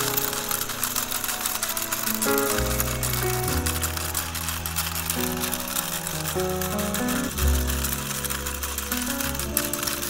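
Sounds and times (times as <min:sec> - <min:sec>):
toy gear mechanism clicking: 0:00.0 - 0:10.0.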